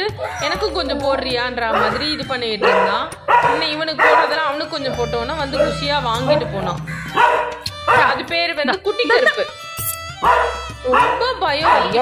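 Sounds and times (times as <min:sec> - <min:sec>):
person's voice: 0:00.4 - 0:06.9
dog barking: 0:01.7 - 0:04.6, 0:05.4 - 0:08.3, 0:10.2 - 0:12.0.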